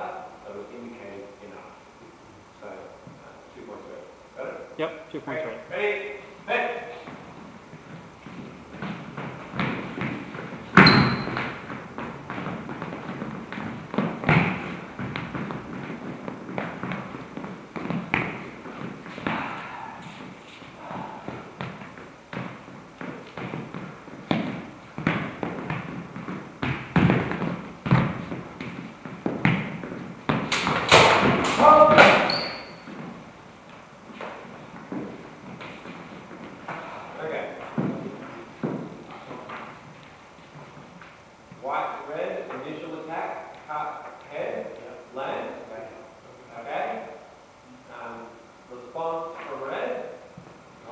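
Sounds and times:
footsteps on hard floor: 0:07.0 - 0:37.0, 0:37.6 - 0:41.6
high metallic ring: 0:32.2 - 0:32.9.

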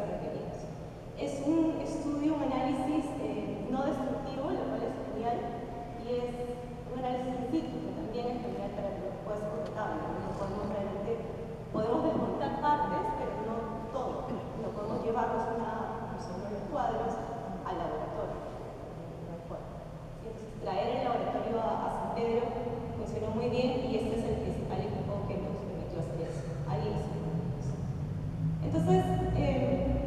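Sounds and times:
woman lecturing: 0:00.0 - 0:27.8, 0:28.6 - 0:30.0
woman speaking: 0:00.0 - 0:27.8, 0:28.6 - 0:30.0.

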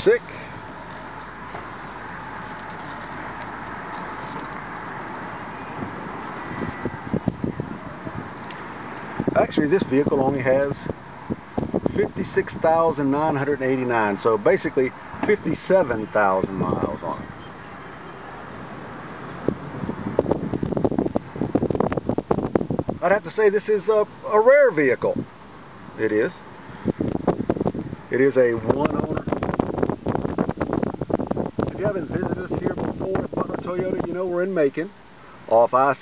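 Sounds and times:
car engine running: 0:00.0 - 0:09.4
tyre and road noise: 0:00.0 - 0:36.0
camera handling rustling and clicking: 0:00.5 - 0:05.2.

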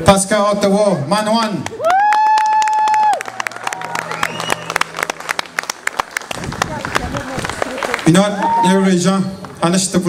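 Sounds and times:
audience clapping and cheering: 0:01.6 - 0:09.6.

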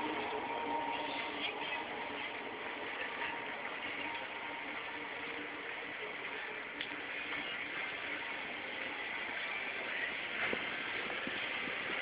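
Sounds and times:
traffic hum: 0:00.0 - 0:12.0.

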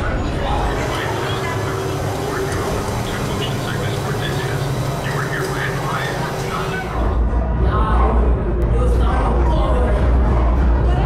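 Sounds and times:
scattered voices: 0:00.0 - 0:11.0
ride vehicle humming: 0:00.3 - 0:07.2.

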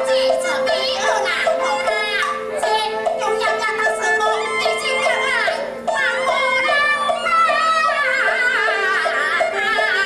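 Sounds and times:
opera music with high melody: 0:00.0 - 0:10.0.

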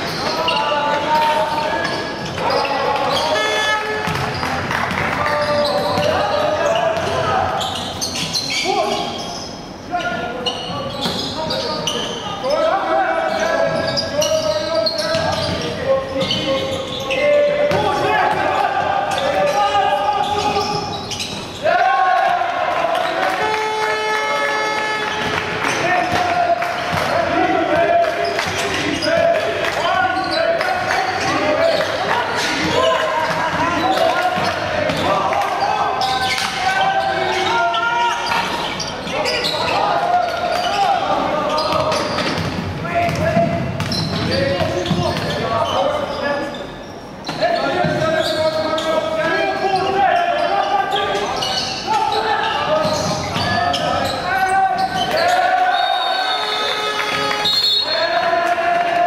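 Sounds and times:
echoing voices: 0:00.0 - 0:59.0.

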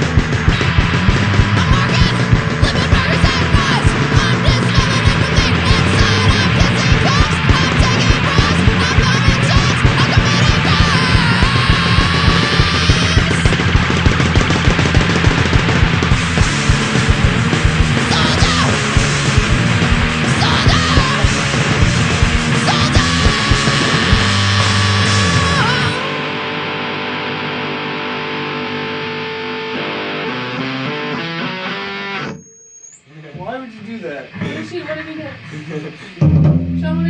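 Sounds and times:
fast driving drum beat: 0:00.0 - 0:26.2, 0:34.3 - 0:37.0
bass guitar: 0:00.0 - 0:32.4, 0:33.0 - 0:37.0
distorted electric guitar: 0:00.0 - 0:37.0.

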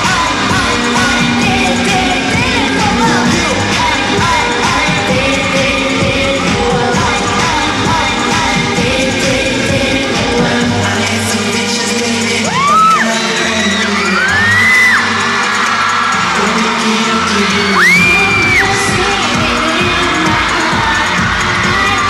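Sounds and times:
pop song over sound system: 0:00.0 - 0:22.0
fans screaming: 0:12.3 - 0:22.0.

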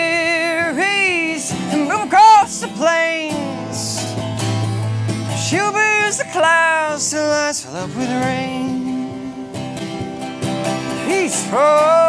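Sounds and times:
man singing: 0:00.0 - 0:04.2, 0:05.2 - 0:09.5, 0:10.9 - 0:12.0
acoustic guitars strumming: 0:00.0 - 0:12.0.

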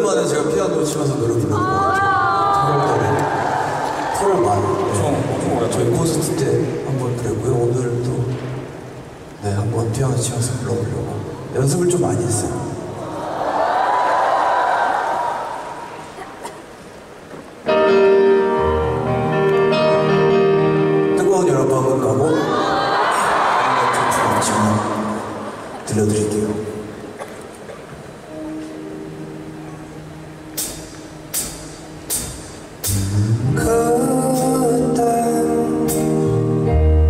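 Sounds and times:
audience cheering and applauding: 0:01.6 - 0:06.0, 0:13.0 - 0:16.1, 0:22.3 - 0:25.9
piano held chord: 0:17.7 - 0:22.0, 0:28.3 - 0:37.0.

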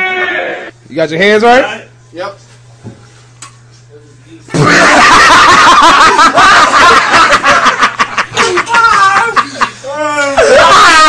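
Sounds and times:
people laughing loudly: 0:04.6 - 0:11.0.

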